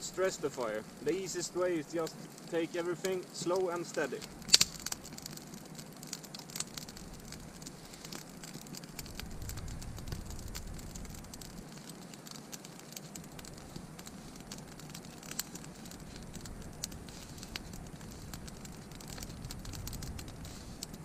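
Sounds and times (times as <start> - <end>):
campfire crackling and popping: 0.0 - 21.0
low rumble: 8.4 - 11.6, 15.9 - 21.0.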